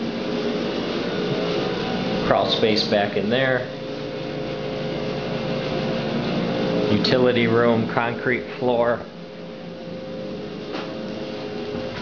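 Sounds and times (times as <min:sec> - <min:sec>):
dehumidifier fan humming: 0:00.0 - 0:12.0.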